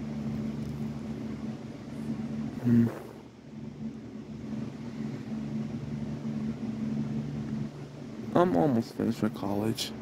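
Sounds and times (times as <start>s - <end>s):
faint room noise: 0.0s - 10.0s
low background hum: 0.0s - 10.0s.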